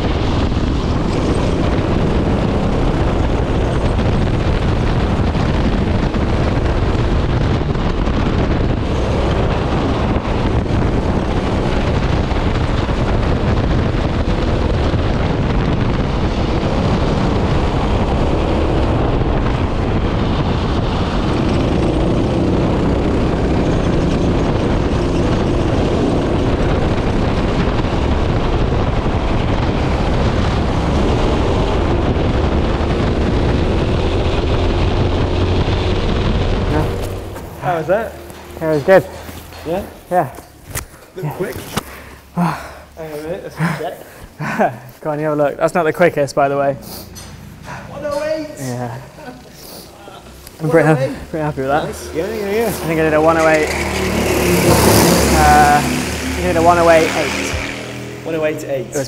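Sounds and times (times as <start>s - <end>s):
racing kart engine: 0.0s - 44.4s, 45.4s - 59.0s
wind buffeting microphone: 0.0s - 59.0s.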